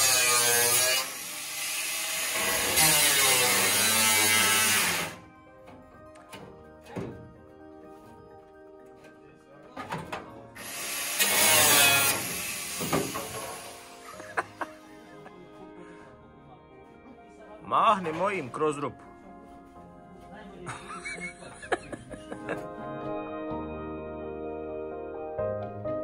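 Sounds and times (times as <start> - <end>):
angle grinder cutting metal: 0.0 - 5.2, 10.6 - 14.7.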